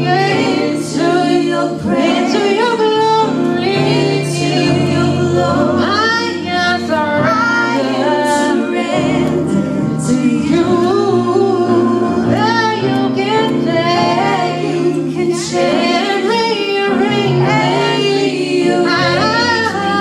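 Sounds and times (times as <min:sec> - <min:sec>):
girl singing gospel: 0:00.0 - 0:20.0.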